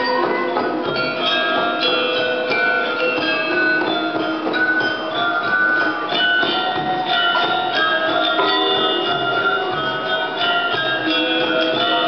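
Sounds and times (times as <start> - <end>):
gamelan ensemble playing: 0.0 - 12.0.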